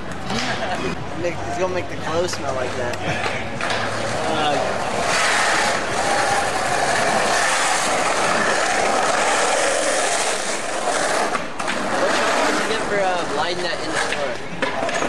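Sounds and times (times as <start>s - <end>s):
skateboard wheels on rough pavement: 2.6s - 15.0s.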